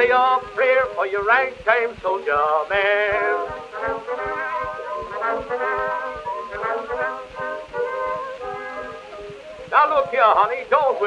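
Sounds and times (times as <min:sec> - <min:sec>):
band playing ragtime: 0:00.0 - 0:11.0.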